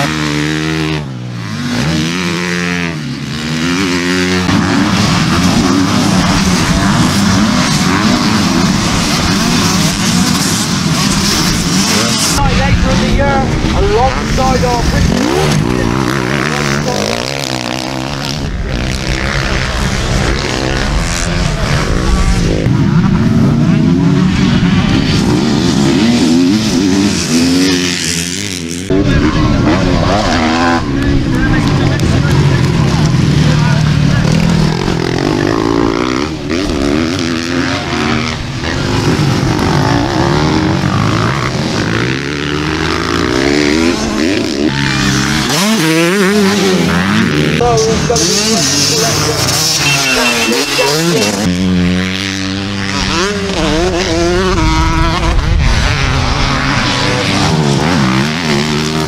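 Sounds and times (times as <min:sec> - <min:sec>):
motocross bike engines revving: 0:00.0 - 0:59.0.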